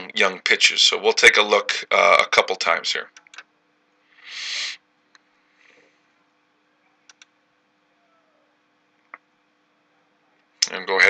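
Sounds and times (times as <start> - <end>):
short hiss: 4.2 - 4.8.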